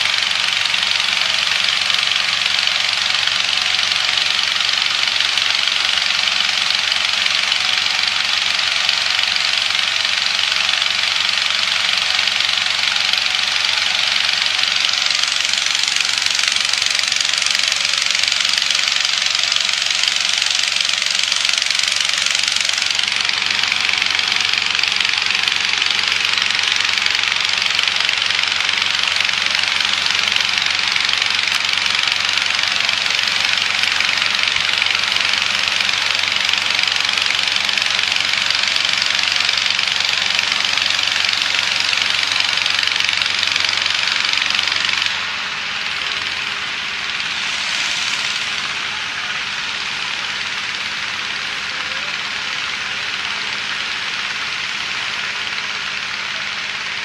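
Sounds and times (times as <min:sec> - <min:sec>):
inflator fan rushing air: 0:00.0 - 0:57.0
low engine hum: 0:00.0 - 0:57.0.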